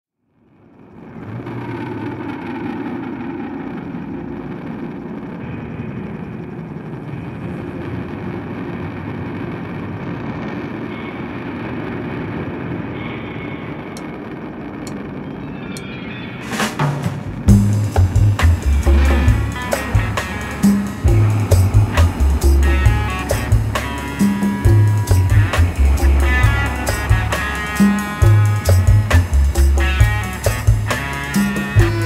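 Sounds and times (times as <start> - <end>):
dense rumbling noise: 0.4 - 15.6, 16.4 - 32.0.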